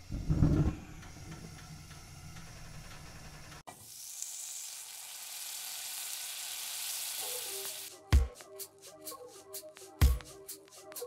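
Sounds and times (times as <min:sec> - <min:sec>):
food sizzling as it fries: 0:03.7 - 0:07.9.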